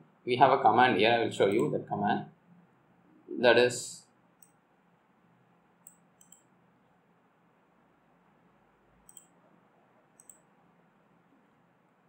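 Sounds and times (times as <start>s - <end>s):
low steady hiss: 0.0s - 12.0s
computer mouse clicks: 1.5s - 1.7s, 4.4s - 4.6s, 5.8s - 6.5s, 9.0s - 9.4s, 10.1s - 10.5s.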